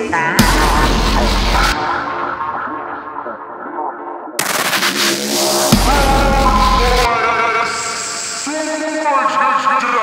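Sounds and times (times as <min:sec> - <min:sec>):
breakcore music: 0:00.0 - 0:10.0
burst of rapid-fire hits: 0:00.4 - 0:02.6, 0:04.4 - 0:07.1.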